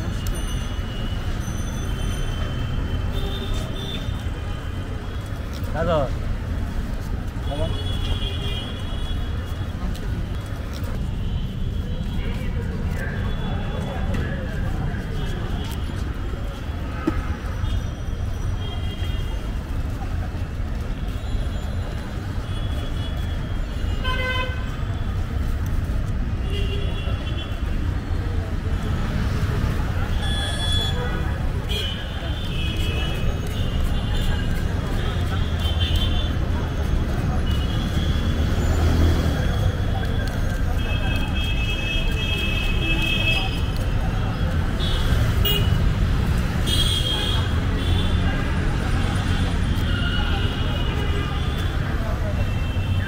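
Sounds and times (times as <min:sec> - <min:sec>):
street traffic rumble: 0:00.0 - 0:53.0.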